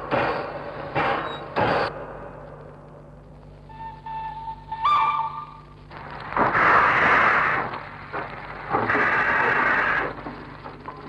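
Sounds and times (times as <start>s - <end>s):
faint low hum: 0.0s - 11.0s
louder higher whistle: 3.7s - 5.6s
train whistle: 3.7s - 5.8s.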